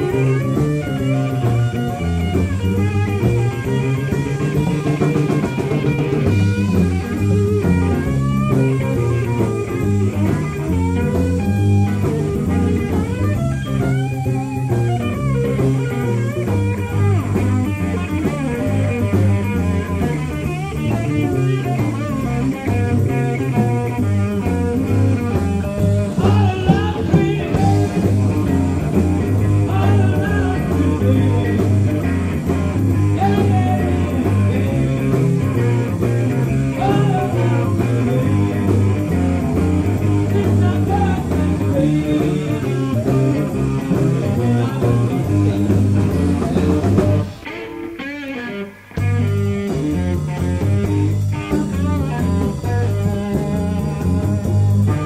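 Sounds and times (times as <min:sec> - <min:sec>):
blues band playing: 0:00.0 - 0:55.0.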